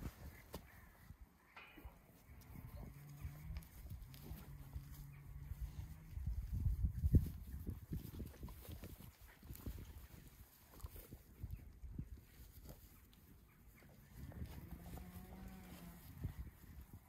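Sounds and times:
animals rustling on grass: 2.1s - 17.0s.

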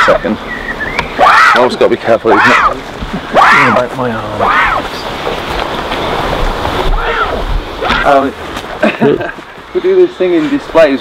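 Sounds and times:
wind buffeting microphone: 2.7s - 9.8s.

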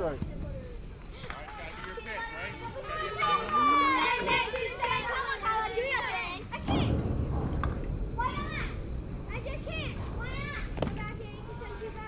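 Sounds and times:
girls calling out and cheering: 1.9s - 7.0s.

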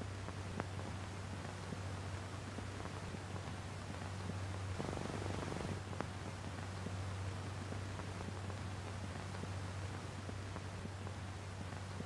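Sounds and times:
low electrical hum: 0.0s - 12.0s
open microphone hiss: 0.0s - 12.0s
rapid pulsing buzz: 4.6s - 5.9s.

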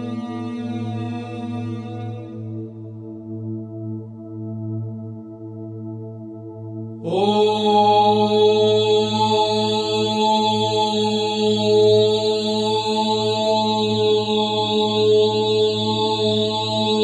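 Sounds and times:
person chanting: 7.0s - 17.0s.

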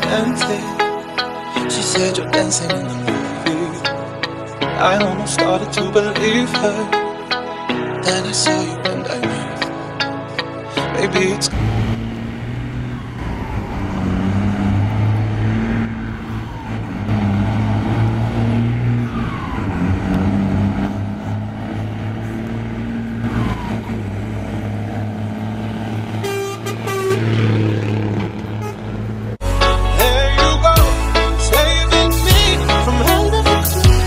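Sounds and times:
truck diesel engine pulling hard: 11.5s - 34.0s.

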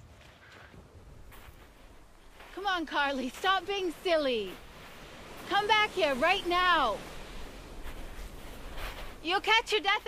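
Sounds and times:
surf washing onto shingle: 1.2s - 10.0s.

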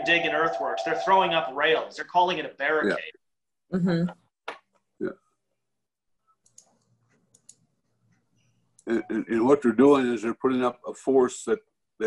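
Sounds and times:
faint clicks: 6.4s - 8.9s.

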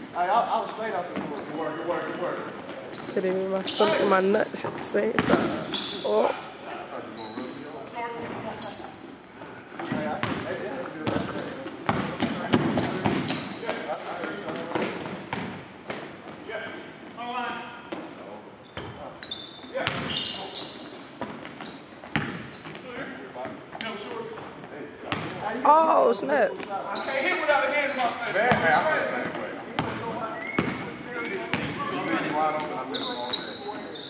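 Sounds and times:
sneaker squeaks: 0.0s - 25.7s, 26.6s - 34.0s
basketball bouncing: 4.7s - 5.7s, 19.8s - 20.1s, 21.2s - 22.8s, 25.1s - 25.4s, 29.8s - 30.9s, 31.5s - 31.8s
players' voices: 22.6s - 34.0s.

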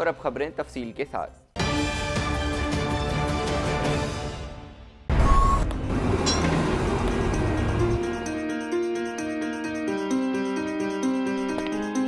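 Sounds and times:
short beep: 5.1s - 5.7s
passing vehicles rumble: 5.8s - 8.0s.

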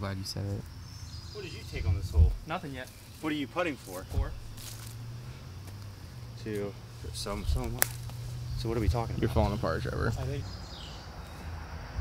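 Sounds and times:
low outdoor hum: 0.0s - 12.0s
soft rustle: 1.9s - 5.0s.

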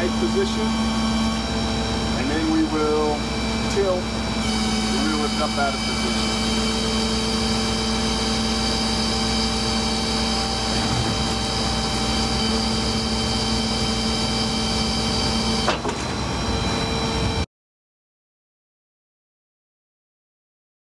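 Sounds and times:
hydraulics high-pitched whine: 0.0s - 17.5s
low hum: 0.0s - 17.5s.

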